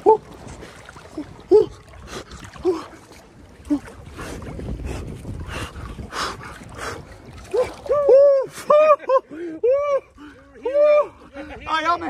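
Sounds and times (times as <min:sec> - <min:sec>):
wind on microphone: 0:00.0 - 0:08.8
water sloshing and splashing: 0:00.0 - 0:12.0.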